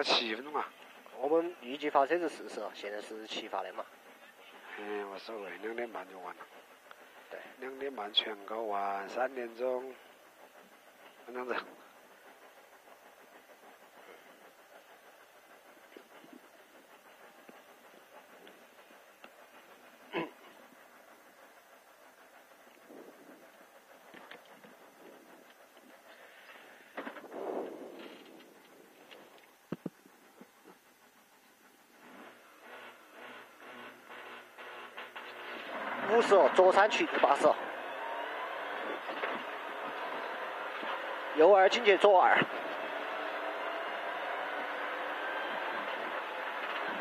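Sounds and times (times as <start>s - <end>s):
rally car engine revving: 32.0s - 47.0s.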